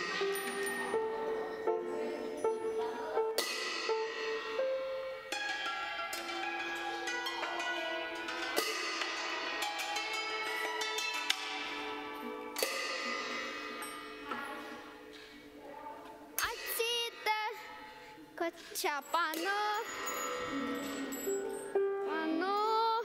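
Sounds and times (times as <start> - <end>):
small hand cymbals ringing: 0.0 - 15.1, 16.4 - 22.8.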